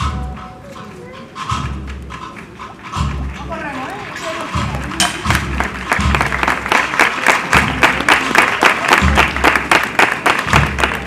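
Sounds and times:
cornet and drum band marching: 0.0s - 11.0s.

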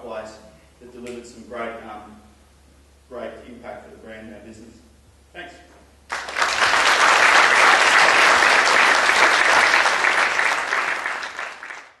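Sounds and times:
audience applauding: 6.1s - 12.0s.

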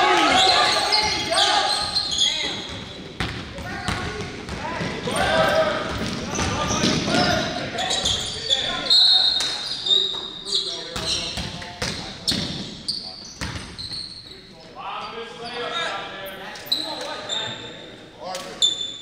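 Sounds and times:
players calling out: 0.0s - 17.6s
sneakers squeaking: 0.0s - 17.8s, 18.4s - 19.0s.

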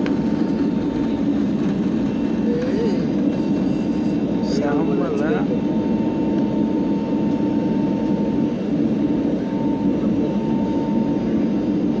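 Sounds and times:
faint engine whine: 0.0s - 12.0s
jet engine roar in cabin: 0.0s - 12.0s.

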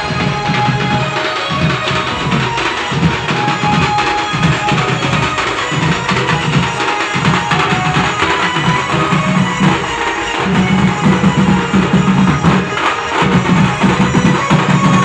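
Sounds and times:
drums beaten with sticks: 0.0s - 15.0s.

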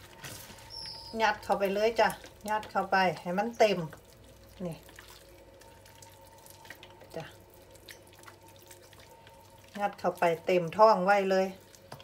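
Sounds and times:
faint steady hum: 0.0s - 12.0s
hands squishing sticky rice: 0.0s - 12.0s.

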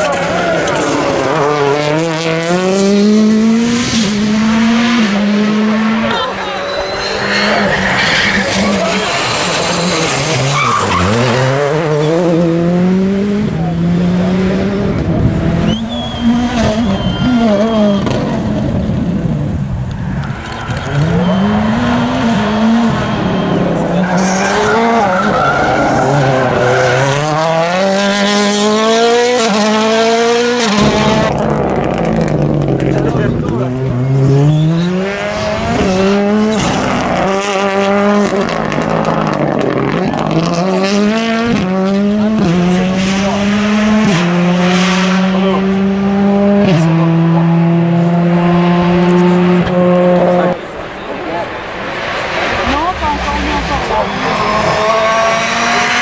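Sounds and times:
rally car engines accelerating: 0.0s - 56.0s.

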